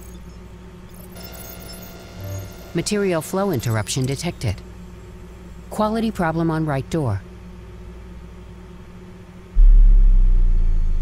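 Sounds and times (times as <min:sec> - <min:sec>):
deep bass rumble: 0:09.6 - 0:11.0
faint low drone: 0:09.6 - 0:11.0.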